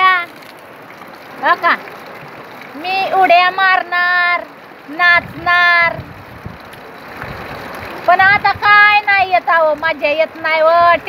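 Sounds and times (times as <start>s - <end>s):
heavy rain falling: 0.0s - 11.0s
wind buffeting microphone: 4.9s - 11.0s.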